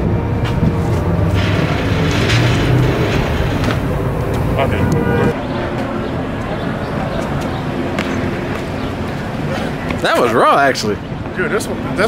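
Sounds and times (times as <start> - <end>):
city street rumble: 0.0 - 12.0.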